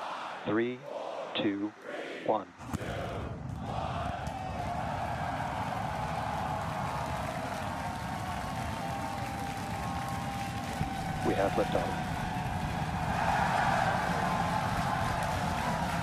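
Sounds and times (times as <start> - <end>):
crowd cheering: 0.0 - 16.0
rocket engines roaring: 2.6 - 16.0.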